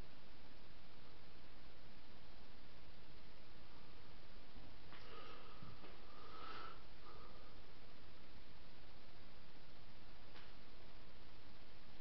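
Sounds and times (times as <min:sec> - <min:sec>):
person sniffing: 0:05.0 - 0:07.3.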